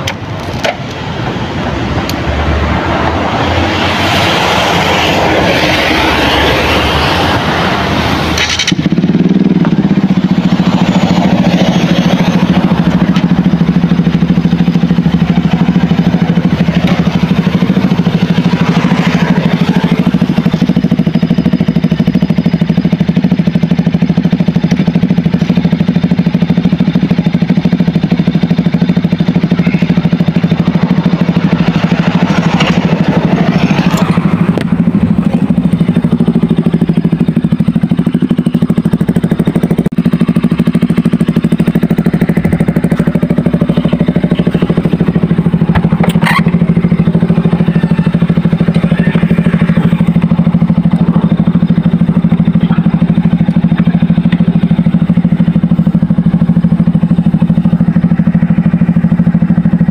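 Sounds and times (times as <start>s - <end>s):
motorcycle engine idling: 0.0s - 59.9s.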